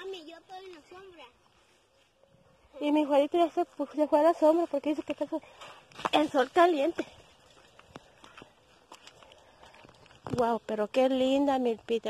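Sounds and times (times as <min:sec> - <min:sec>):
faint footsteps on dirt: 0:00.0 - 0:12.0.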